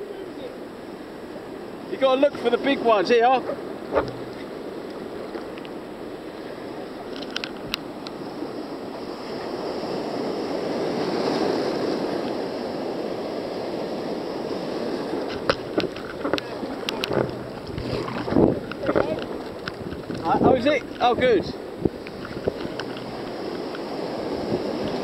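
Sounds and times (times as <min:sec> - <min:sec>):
surf breaking and water rushing: 0:00.0 - 0:25.0
wind on microphone: 0:02.8 - 0:25.0
sharp water splashes: 0:03.8 - 0:04.8, 0:15.0 - 0:21.0.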